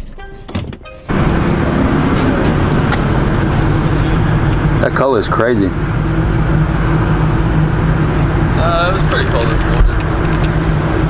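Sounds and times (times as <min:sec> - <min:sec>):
music with a beat: 0:00.0 - 0:00.5
vehicle engine rumbling: 0:00.8 - 0:11.0.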